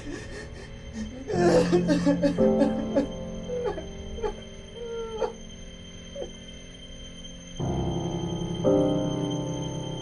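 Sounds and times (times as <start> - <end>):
woman sobbing: 0.0 - 5.4
background music: 0.0 - 10.0.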